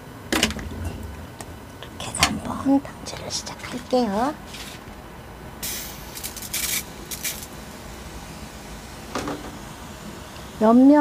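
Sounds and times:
sprayer hissing spurts: 5.6 - 10.8.

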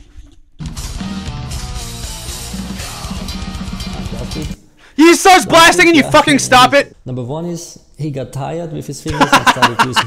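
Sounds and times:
metal music with fast drums: 0.6 - 4.6.

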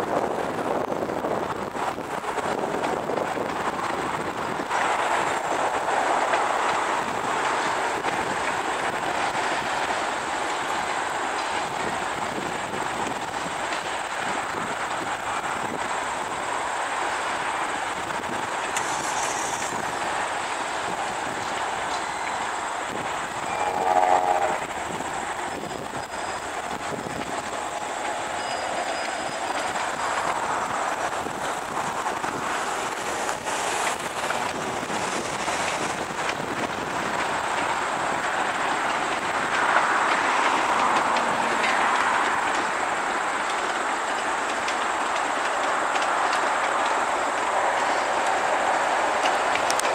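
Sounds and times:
distant passenger train rumbling: 0.0 - 49.9
highway traffic: 0.0 - 49.9
clicks over rail joints: 1.7 - 23.4, 25.7 - 49.9.

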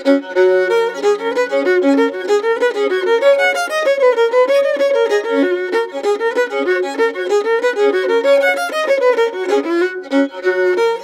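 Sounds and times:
fiddle playing a reel: 0.0 - 11.0.

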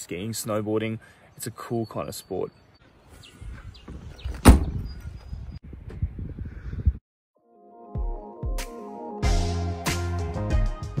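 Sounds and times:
car hatch slamming shut: 4.4 - 4.8.

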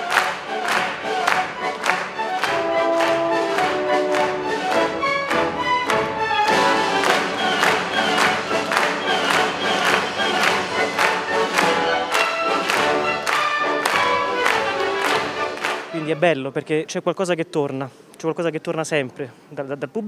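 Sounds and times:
orchestra playing classical piece: 0.0 - 16.5.

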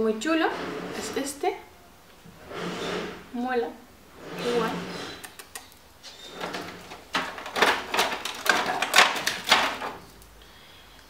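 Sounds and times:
packaging crinkling and rustling: 6.5 - 10.2.

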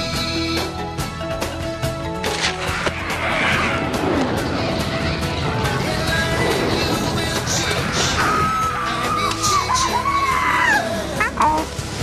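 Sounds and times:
trailer music: 0.0 - 12.0.

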